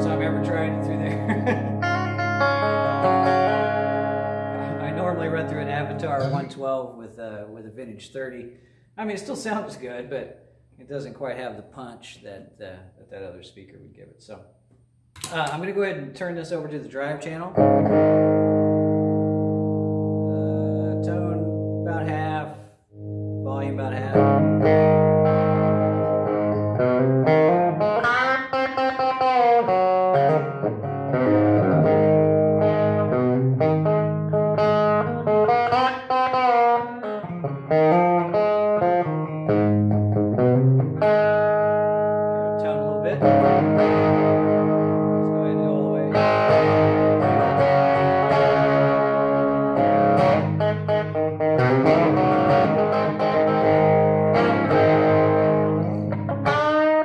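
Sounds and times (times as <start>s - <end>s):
distorted electric guitar: 0.0s - 6.6s, 17.6s - 57.0s.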